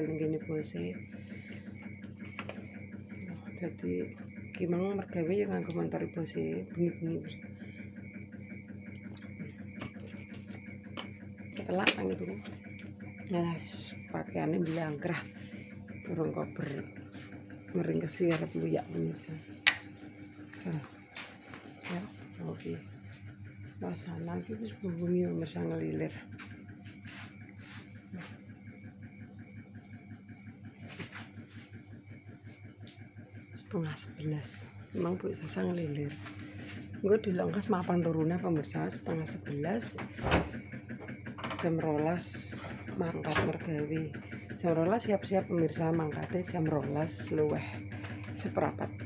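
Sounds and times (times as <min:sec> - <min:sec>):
cricket trilling: 0:00.0 - 0:49.0
low hum with regular pulse: 0:00.0 - 0:49.0.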